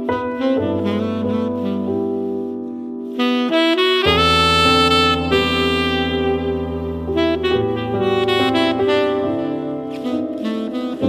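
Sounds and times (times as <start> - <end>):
tenor saxophone melody: 0.0 - 11.0.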